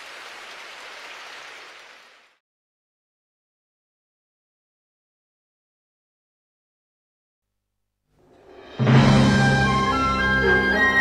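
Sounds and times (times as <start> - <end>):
audience applause: 0.0 - 2.4.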